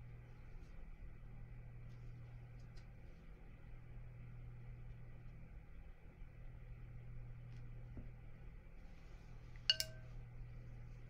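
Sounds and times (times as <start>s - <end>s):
steady low hum: 0.0s - 11.0s
paintbrush clinking on paint box: 9.7s - 10.1s.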